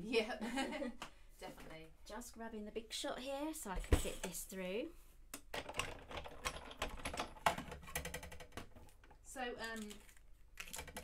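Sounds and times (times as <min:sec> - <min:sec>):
hand-cranked machine clicking and creaking: 0:05.5 - 0:08.8.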